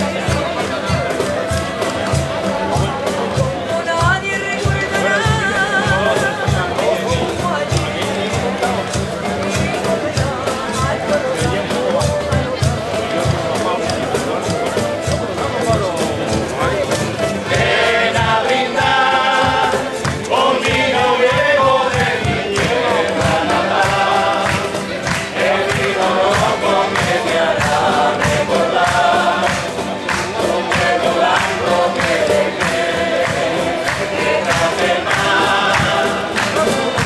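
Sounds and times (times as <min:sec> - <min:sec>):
plucked string instruments: 0:00.0 - 0:37.0
strummed guitars: 0:00.0 - 0:37.0
voices singing together: 0:00.0 - 0:37.0.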